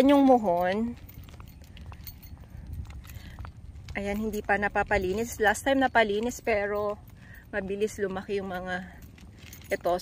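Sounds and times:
footsteps on concrete: 0.0s - 10.0s
wind rumbling on microphone: 0.0s - 10.0s.

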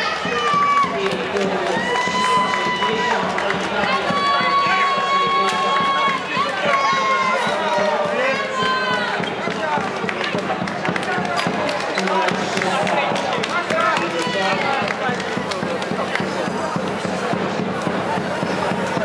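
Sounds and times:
crowd talking and calling out: 0.0s - 19.0s.

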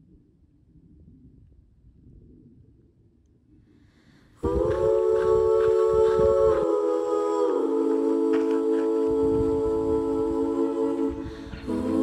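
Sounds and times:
faint low rumble: 0.0s - 7.1s, 7.7s - 12.0s
faint hiss: 3.5s - 12.0s.

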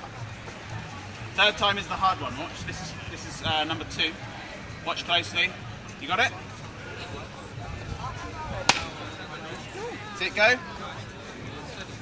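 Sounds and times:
faint crowd voices: 0.0s - 12.0s.

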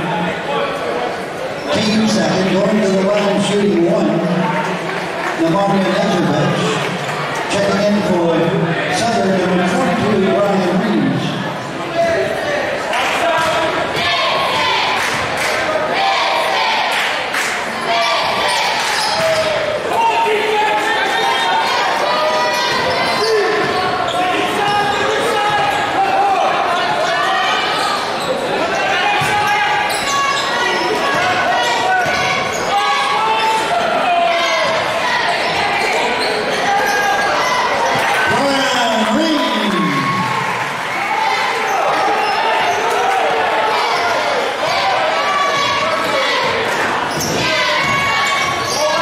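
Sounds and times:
crowd voices echoing: 0.0s - 49.0s.

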